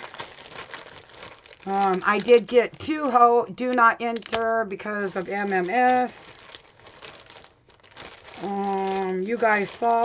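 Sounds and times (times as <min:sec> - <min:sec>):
plastic packaging crinkling: 0:00.0 - 0:03.2, 0:03.8 - 0:10.0.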